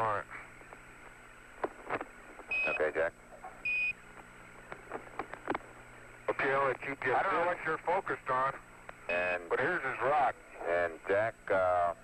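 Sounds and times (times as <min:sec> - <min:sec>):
steady low hum: 0:00.0 - 0:12.0
faint radio clicks: 0:00.3 - 0:07.1, 0:08.8 - 0:09.1.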